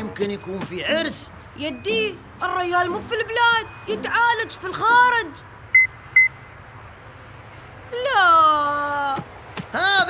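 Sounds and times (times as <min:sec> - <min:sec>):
mobile phone beep: 0:01.6 - 0:02.2, 0:03.4 - 0:04.8, 0:05.7 - 0:06.4.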